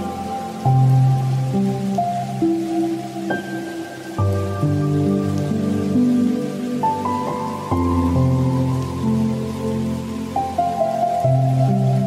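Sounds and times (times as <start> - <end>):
slow soft instrumental music: 0.0 - 12.0
steady rain: 0.0 - 12.0.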